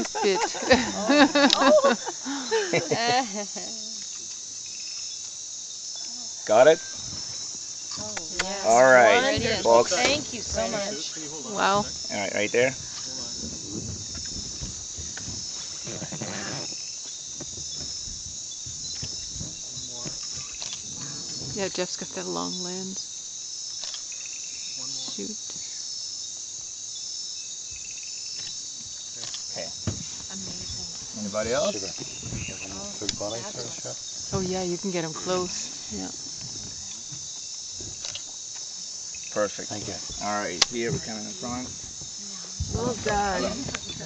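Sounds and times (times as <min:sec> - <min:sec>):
night insects trilling: 0:00.0 - 0:44.0.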